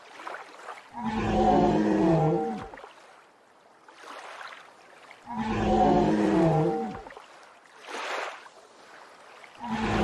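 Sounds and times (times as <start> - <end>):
dinosaur roar: 1.0 - 2.6, 5.3 - 6.9.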